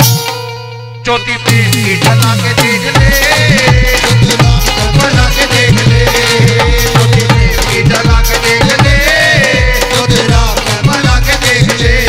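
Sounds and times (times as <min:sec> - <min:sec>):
barrel drum fast rhythm: 0:01.5 - 0:12.0.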